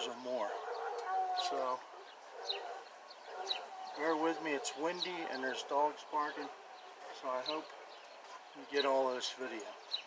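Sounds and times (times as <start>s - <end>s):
distant dogs barking: 0.0s - 10.0s
high bird chirps: 0.7s - 9.0s.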